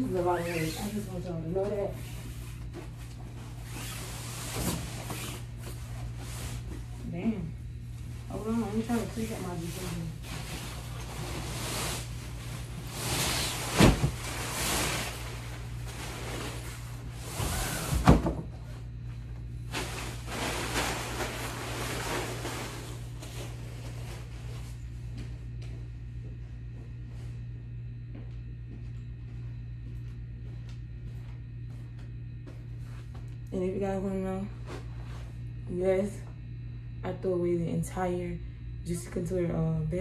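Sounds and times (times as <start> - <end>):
bedding rustling: 0.0 - 18.3, 19.6 - 24.9
steady low hum: 0.0 - 40.0.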